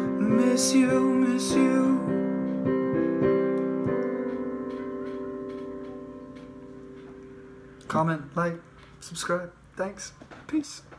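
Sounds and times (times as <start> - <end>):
piano chord ringing: 0.0 - 9.5.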